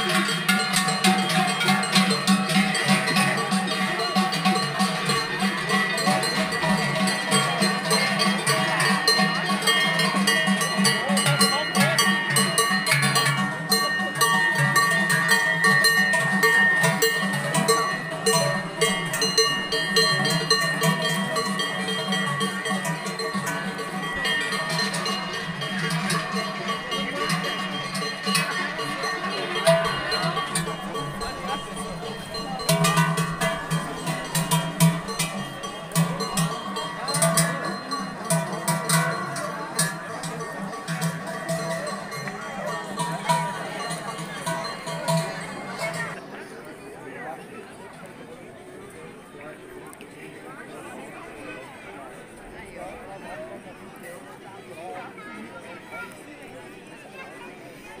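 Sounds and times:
cowbells clanging: 0:00.0 - 0:46.3.

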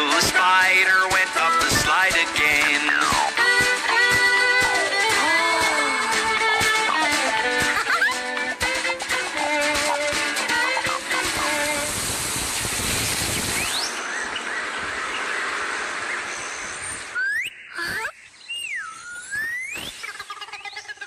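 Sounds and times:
cartoon music: 0:00.0 - 0:11.9
rushing hissing noise: 0:10.2 - 0:17.2
squeaky whistle glides: 0:17.2 - 0:20.1.

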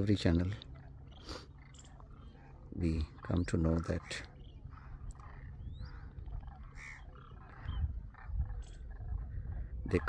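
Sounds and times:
distant crane calls: 0:00.0 - 0:10.0.

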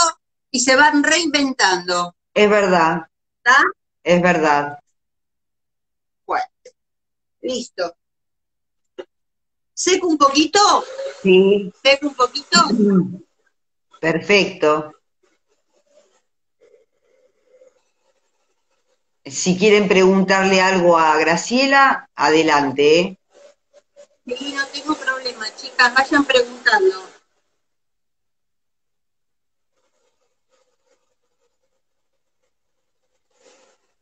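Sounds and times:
faint scratching and rustling: 0:09.8 - 0:27.8, 0:29.4 - 0:34.0.

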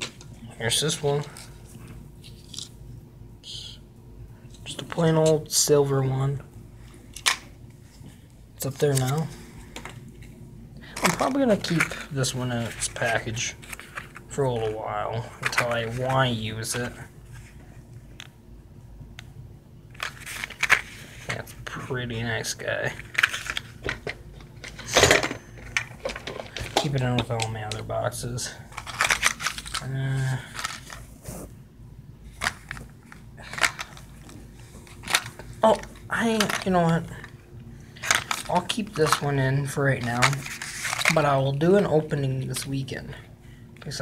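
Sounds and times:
packaged lures clattering in plastic box: 0:10.9 - 0:14.3, 0:23.0 - 0:27.7, 0:28.7 - 0:31.0, 0:32.3 - 0:37.3, 0:38.0 - 0:39.3, 0:40.0 - 0:41.3
plastic packaging crackling: 0:28.7 - 0:31.4, 0:32.3 - 0:37.3, 0:38.0 - 0:39.3.

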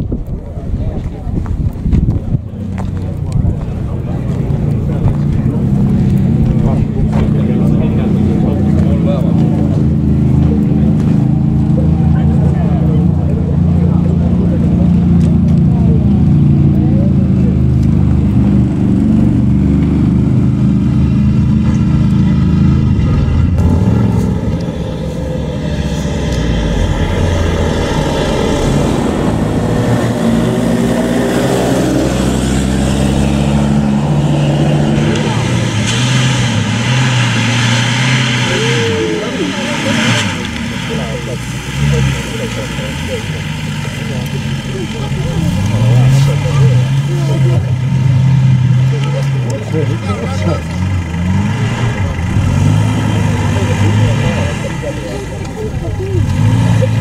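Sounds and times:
off-road engine running: 0:00.0 - 0:57.0
engine revving up and down: 0:02.5 - 0:57.0.

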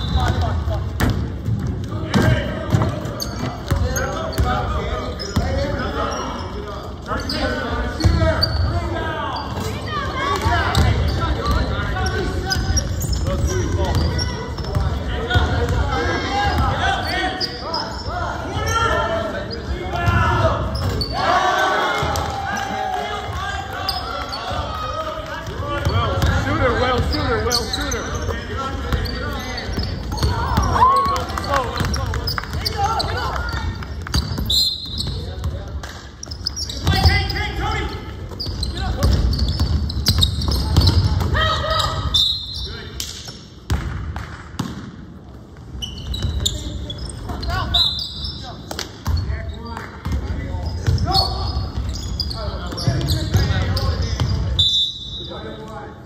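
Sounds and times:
players calling out: 0:00.0 - 0:43.0
basketball bouncing on wooden floor: 0:01.0 - 0:04.5.

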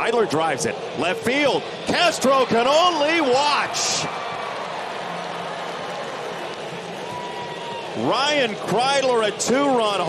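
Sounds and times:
stadium crowd cheering: 0:00.0 - 0:10.0.

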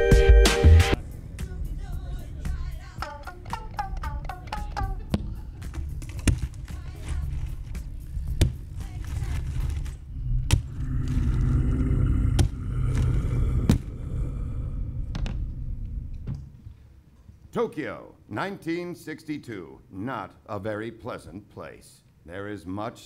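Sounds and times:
deep rumble: 0:00.9 - 0:03.2, 0:05.0 - 0:16.6.

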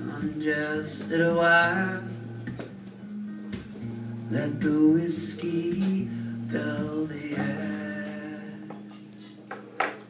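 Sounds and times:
person singing: 0:00.0 - 0:02.3, 0:04.3 - 0:09.4
acoustic guitar strumming: 0:00.0 - 0:10.0.

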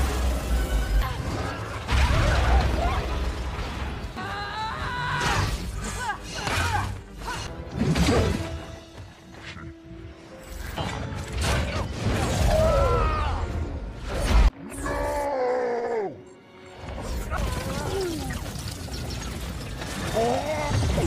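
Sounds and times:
film score music: 0:00.0 - 0:21.0.

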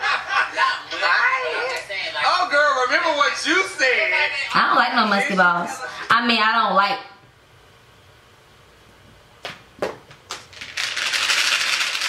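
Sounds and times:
candy rattling in plastic container: 0:10.5 - 0:12.0.

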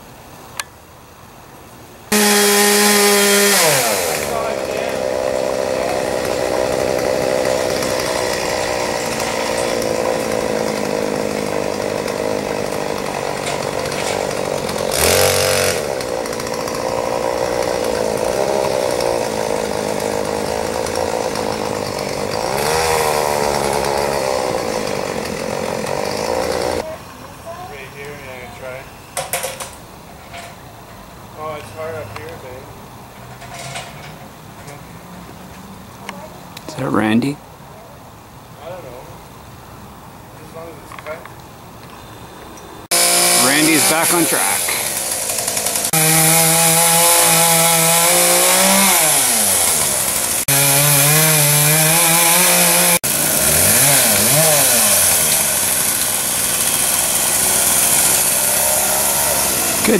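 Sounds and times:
chainsaw cutting branches: 0:02.1 - 0:26.9, 0:42.8 - 0:59.9.

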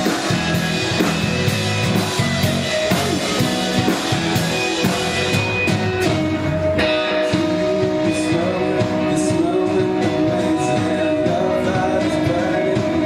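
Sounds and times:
drum kit steady beat: 0:00.0 - 0:13.0
rock band playing: 0:00.0 - 0:13.0.

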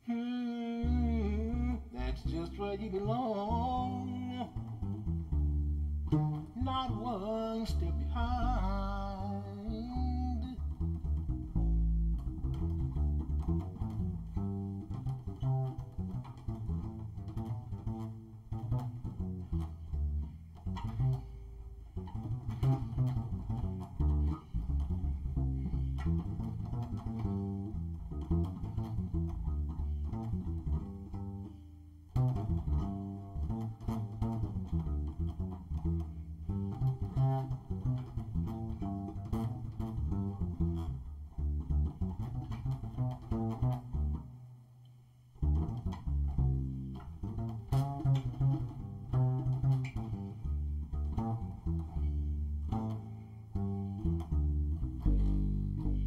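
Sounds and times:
double bass plucked: 0:00.0 - 0:56.0.

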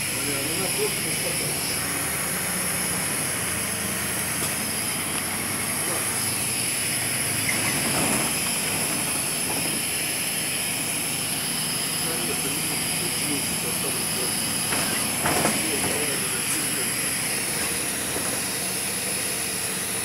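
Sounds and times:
bus engine and road noise: 0:00.0 - 0:20.0.

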